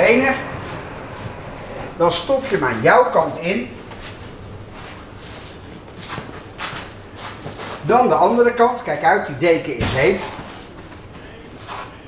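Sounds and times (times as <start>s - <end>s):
soft swishes: 0.2s - 2.5s
fabric rustling and scraping: 0.2s - 2.6s, 3.7s - 8.4s.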